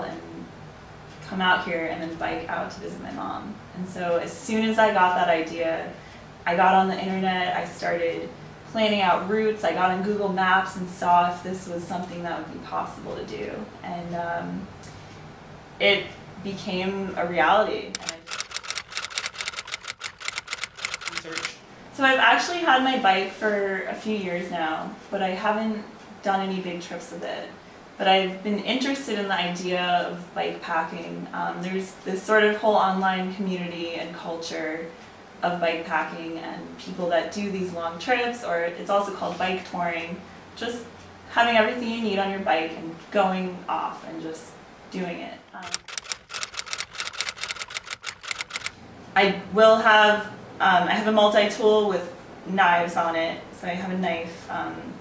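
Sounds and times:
typewriter key clacks: 0:18.0 - 0:21.5, 0:45.6 - 0:48.7.

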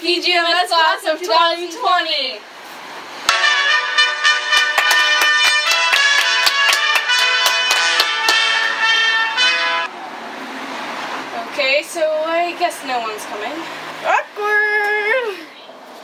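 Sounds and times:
bright fast-moving music: 0:03.3 - 0:09.9.

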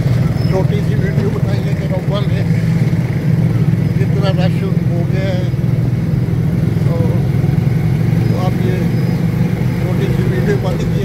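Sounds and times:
motorcycle engine running: 0:00.0 - 0:11.0
man speaking: 0:00.4 - 0:02.6, 0:03.9 - 0:05.6, 0:06.8 - 0:07.3, 0:08.2 - 0:09.0, 0:09.8 - 0:11.0.

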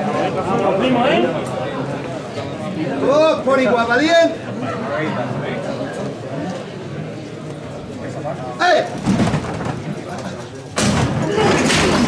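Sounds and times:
thud: 0:09.0 - 0:09.9, 0:10.8 - 0:12.0.

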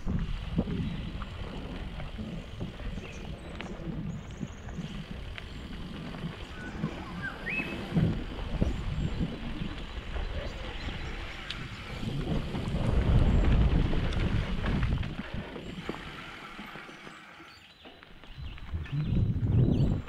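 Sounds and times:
wind rushing on microphone: 0:00.0 - 0:16.1, 0:18.3 - 0:20.0
bike tyres on dirt trail: 0:00.0 - 0:20.0.

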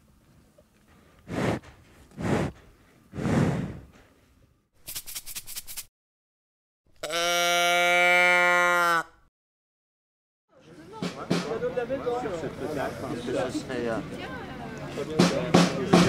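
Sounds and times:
cow breathing through nose: 0:00.9 - 0:04.4
cow mooing: 0:07.0 - 0:09.1.

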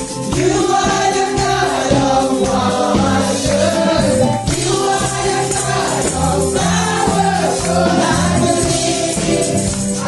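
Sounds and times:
bass notes: 0:00.0 - 0:10.0
drum beat: 0:00.0 - 0:10.0
tambourines shaken: 0:00.0 - 0:10.0
women singing gospel: 0:00.2 - 0:10.0.

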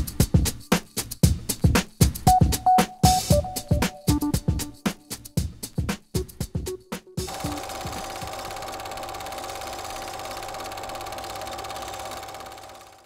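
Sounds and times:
film projector clattering and whirring: 0:07.2 - 0:13.0.

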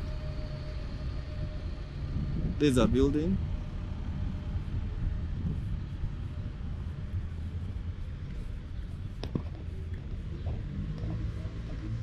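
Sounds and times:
cars passing on road: 0:00.0 - 0:12.0.

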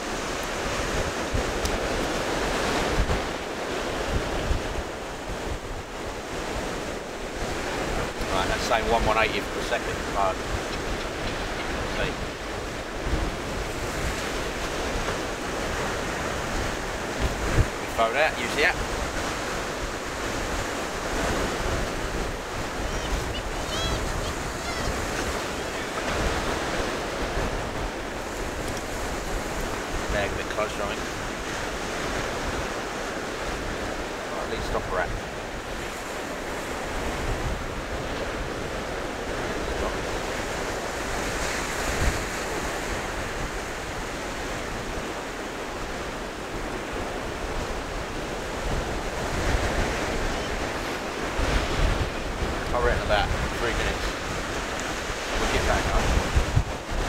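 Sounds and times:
sea waves breaking on beach: 0:00.0 - 0:57.0
wind buffeting microphone: 0:00.0 - 0:57.0.

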